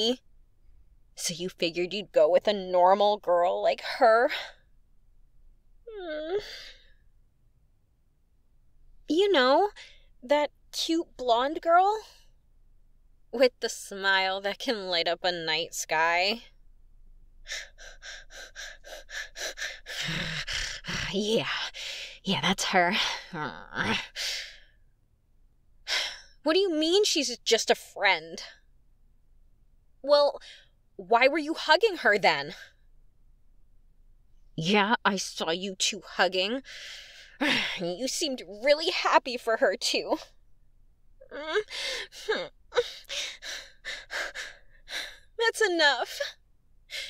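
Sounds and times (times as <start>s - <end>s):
woman whimpering: 5.9s - 6.8s, 41.2s - 45.2s
woman panting: 17.4s - 22.2s, 36.7s - 37.9s, 41.2s - 45.3s.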